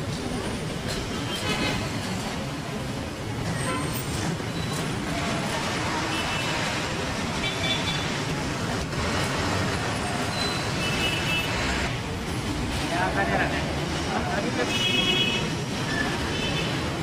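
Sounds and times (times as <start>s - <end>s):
heavy city traffic: 0.0s - 17.0s
people's voices: 12.1s - 15.3s.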